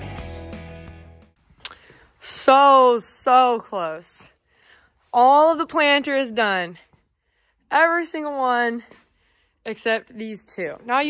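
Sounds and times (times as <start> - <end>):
background music: 0.0 - 1.4
woman speaking: 2.2 - 4.4, 5.1 - 6.9, 7.7 - 9.0, 9.6 - 11.0.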